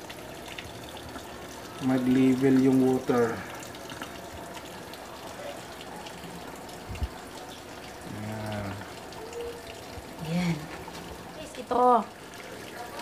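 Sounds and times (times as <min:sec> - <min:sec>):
water pouring into washing machine: 0:00.0 - 0:13.0.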